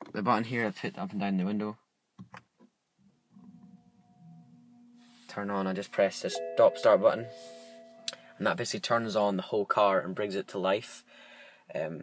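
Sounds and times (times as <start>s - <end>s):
faint steady tone: 3.0s - 9.6s.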